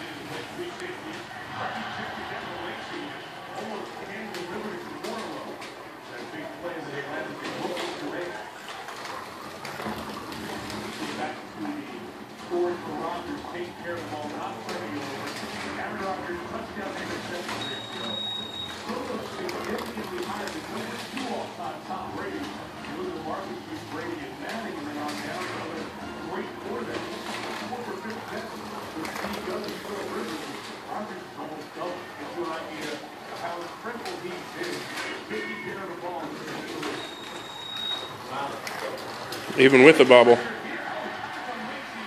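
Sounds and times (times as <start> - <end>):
people chattering: 0.0 - 42.0.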